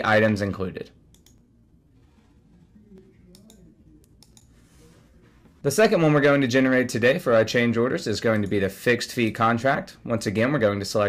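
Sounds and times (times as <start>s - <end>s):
computer mouse clicking: 1.1s - 1.4s, 3.3s - 4.8s.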